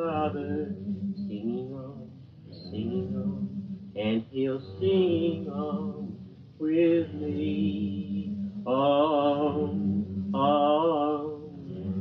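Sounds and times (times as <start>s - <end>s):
chant with vibrato: 0.0s - 12.0s
low drone: 0.0s - 12.0s.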